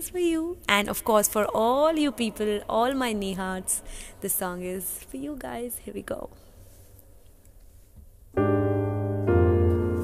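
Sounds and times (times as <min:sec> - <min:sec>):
sustained piano chord: 0:08.4 - 0:10.0.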